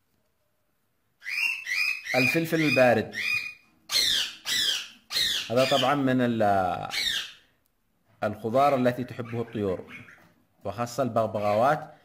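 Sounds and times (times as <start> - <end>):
budgerigars calling: 1.2 - 6.1, 6.9 - 7.4, 8.6 - 10.3.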